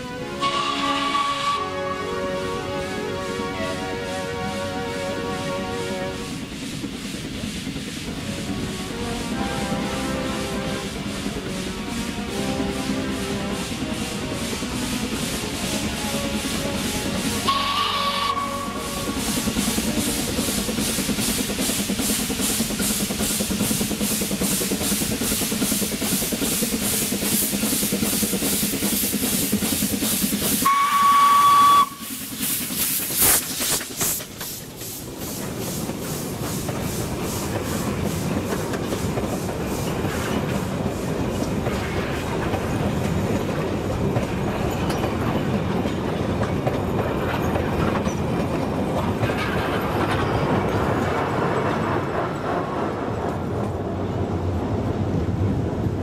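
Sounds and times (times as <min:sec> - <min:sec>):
steam whistle: 0:00.0 - 0:06.4, 0:08.6 - 0:11.1, 0:15.7 - 0:19.2, 0:30.6 - 0:32.2
steam locomotive chuffing: 0:00.0 - 0:56.0
train wheels rumbling on rails: 0:00.0 - 0:56.0
steam hissing: 0:00.2 - 0:52.8.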